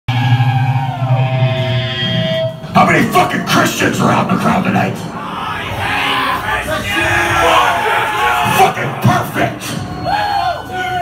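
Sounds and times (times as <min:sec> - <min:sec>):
electric guitar and bass tones: 0:00.1 - 0:03.1.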